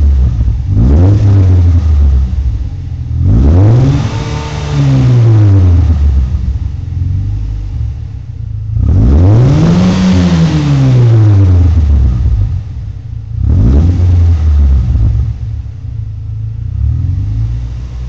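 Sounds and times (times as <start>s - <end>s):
car engine revving: 0.0s - 18.0s.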